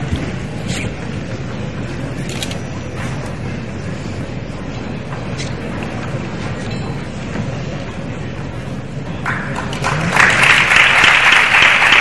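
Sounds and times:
audience murmuring: 7.2s - 12.0s.

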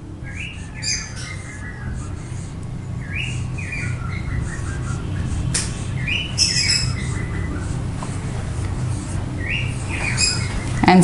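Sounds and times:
steady low hum: 0.0s - 11.0s
marker squeaking on whiteboard: 0.3s - 10.8s.

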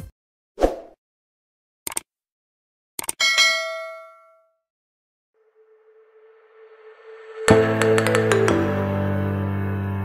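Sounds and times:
notification bell ding: 3.2s - 4.5s.

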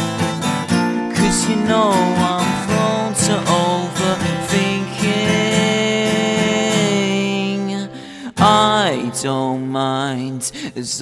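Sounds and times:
acoustic guitar strumming: 0.0s - 10.9s
man singing long note: 1.2s - 7.8s.

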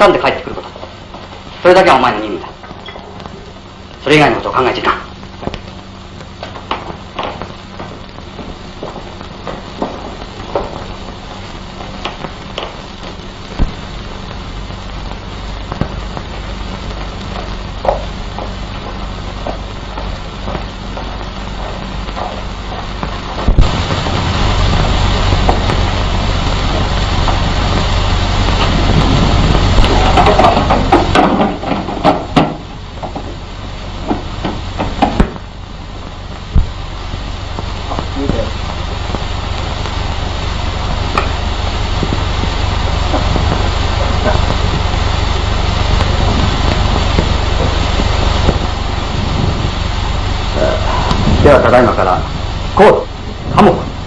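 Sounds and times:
faint hiss: 0.0s - 54.0s
propeller aircraft engine rumbling: 21.9s - 54.0s.

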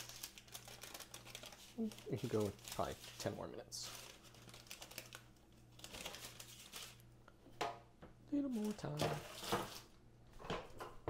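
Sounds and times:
parchment paper rustling and crinkling: 0.0s - 7.1s, 8.4s - 10.0s.

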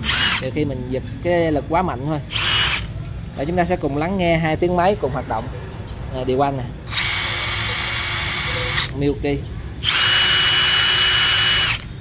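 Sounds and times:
impact wrench motor whine: 2.3s - 2.9s, 6.9s - 8.9s, 9.8s - 11.9s.

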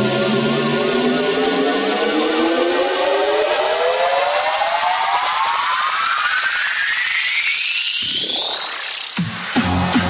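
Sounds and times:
synth riser: 0.0s - 10.0s.

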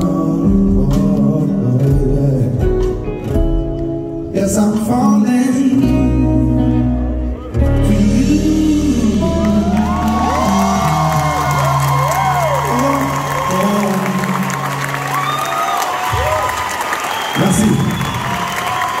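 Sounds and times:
live band playing: 0.0s - 19.0s
audience cheering and applauding: 8.9s - 19.0s.

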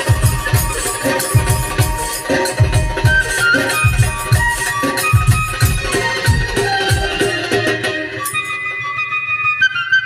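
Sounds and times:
flute melody: 0.0s - 10.0s.

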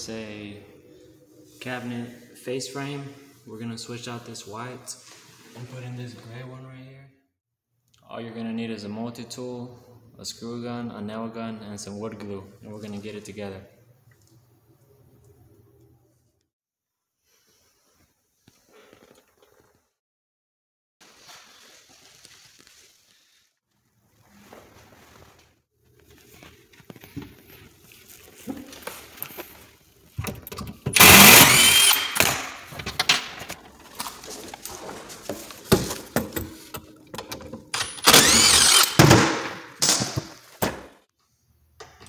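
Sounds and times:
cordless screw gun motor: 31.0s - 32.3s, 37.8s - 39.0s.

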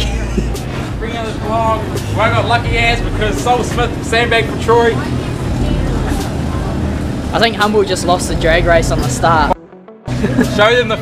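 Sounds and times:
faint indistinct voices: 0.0s - 9.5s
steady low rumble: 0.0s - 10.6s.

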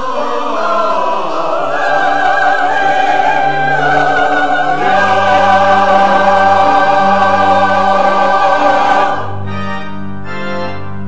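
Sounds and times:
church choir singing: 0.0s - 9.8s
organ playing held chords: 0.0s - 11.0s.

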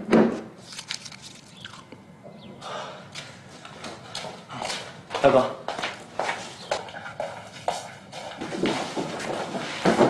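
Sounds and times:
footsteps of men walking: 2.4s - 10.0s.

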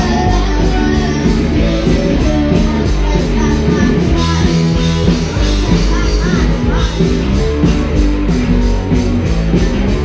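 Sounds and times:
bass guitar: 0.0s - 10.0s
drums: 0.0s - 10.0s
electric guitars: 0.0s - 10.0s.

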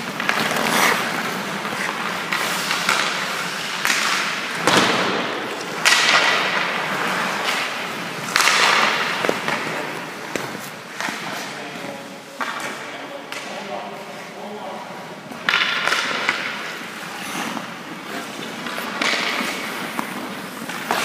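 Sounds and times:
skate blades scraping ice: 0.0s - 12.8s, 14.9s - 21.0s
hockey sticks cracking against pucks: 0.0s - 21.0s.

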